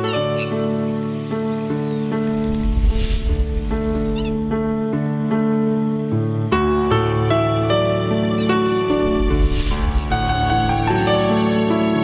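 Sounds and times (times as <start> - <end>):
bird chirps: 0.0 - 2.8, 3.7 - 4.8
gentle music of sustained chords: 0.0 - 12.0.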